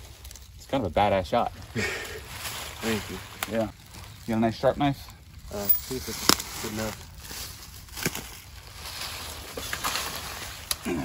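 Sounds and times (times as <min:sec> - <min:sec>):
rustling in dry leaf litter: 0:00.0 - 0:11.0.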